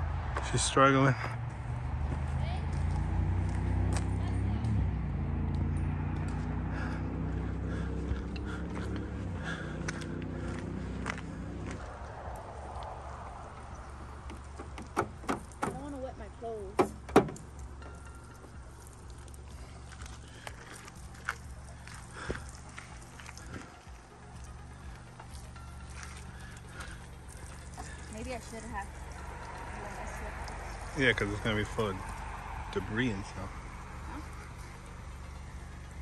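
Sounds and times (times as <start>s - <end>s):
sharp knocks: 14.3s - 15.9s, 16.8s - 17.5s
water spraying onto gravel: 17.4s - 35.0s.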